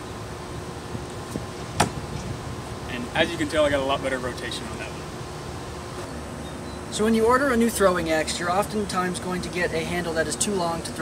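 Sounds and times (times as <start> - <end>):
faint continuous hum: 0.0 - 11.0.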